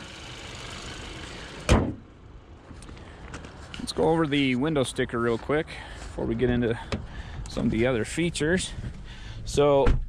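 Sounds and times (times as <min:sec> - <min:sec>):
car engine idling: 0:00.0 - 0:01.9
car hood slamming shut: 0:01.6 - 0:02.0.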